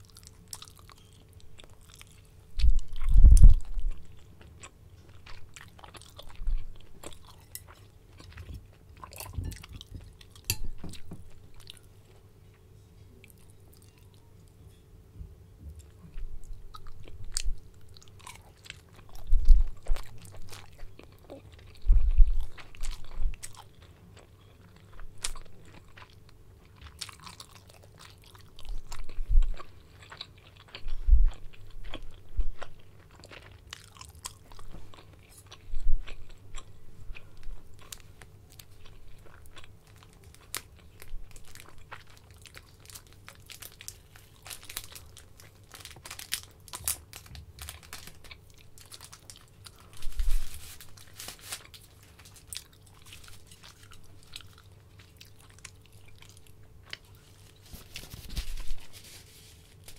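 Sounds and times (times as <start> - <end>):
chewing and biting food: 0.0 - 11.9, 15.8 - 58.9.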